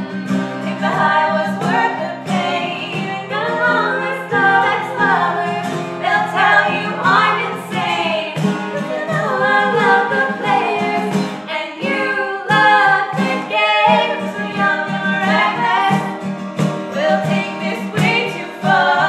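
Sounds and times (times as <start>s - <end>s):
cajon beat: 0.0s - 19.0s
strummed acoustic guitar: 0.0s - 19.0s
women singing a pop song: 0.1s - 19.0s.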